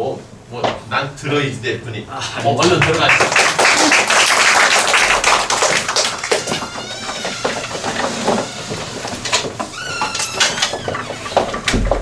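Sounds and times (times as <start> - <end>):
audience clapping: 2.4 - 8.7
faint high-pitched squeaks: 6.2 - 11.7.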